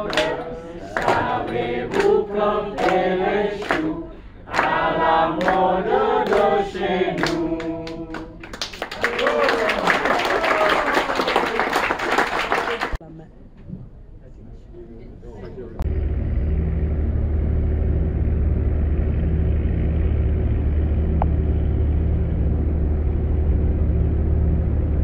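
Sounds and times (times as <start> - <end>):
hand claps: 0.0 - 3.0, 3.6 - 3.9, 4.5 - 4.8, 5.4 - 6.6, 7.2 - 13.0
group of voices chanting: 0.0 - 8.4.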